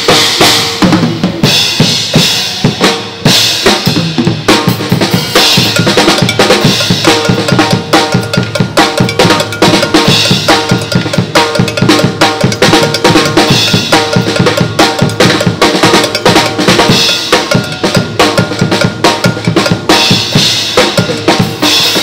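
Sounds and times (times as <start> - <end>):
drum kit fast groove: 0.0 - 22.0.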